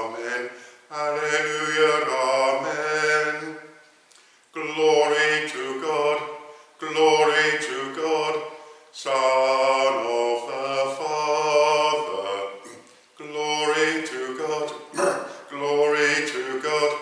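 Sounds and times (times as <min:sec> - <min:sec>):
man singing a chant: 0:00.0 - 0:03.8, 0:04.5 - 0:17.0.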